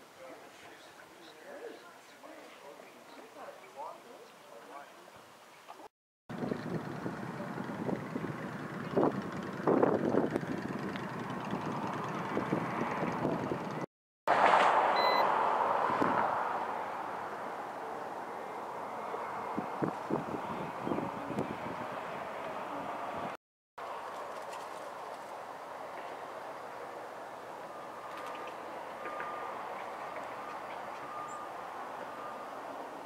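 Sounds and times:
vehicle passing close: 0:06.3 - 0:24.2
roadside traffic noise: 0:06.3 - 0:33.0
brief high beep: 0:15.0 - 0:15.3.

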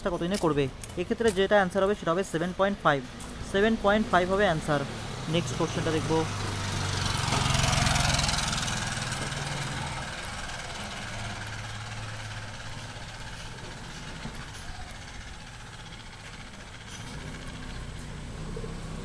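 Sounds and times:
low engine hum: 0:03.3 - 0:19.0.

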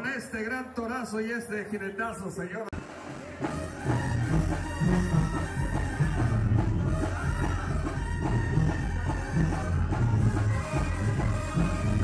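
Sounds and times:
brass band music: 0:02.7 - 0:12.0.

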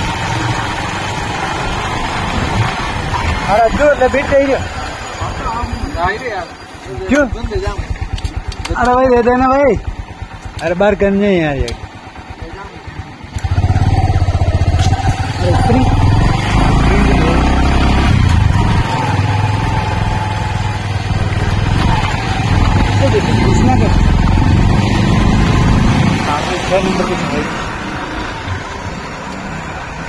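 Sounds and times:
motorcycle engine running: 0:07.0 - 0:28.6.

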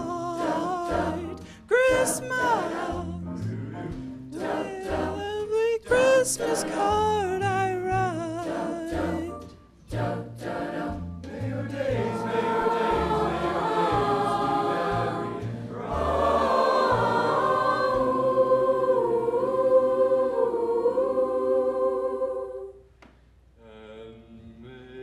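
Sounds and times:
choir singing sustained chords: 0:00.0 - 0:05.2, 0:08.4 - 0:22.9.

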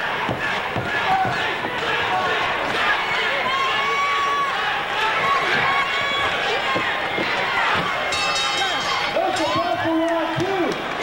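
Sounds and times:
crowd shouting and yelling: 0:00.0 - 0:11.0.

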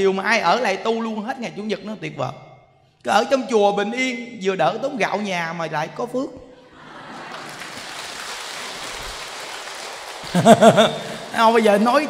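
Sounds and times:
audience applauding: 0:06.7 - 0:12.0.

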